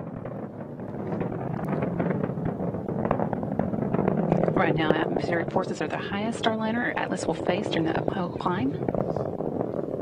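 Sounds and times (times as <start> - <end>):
rocket engine rushing with crackle: 0.0 - 10.0.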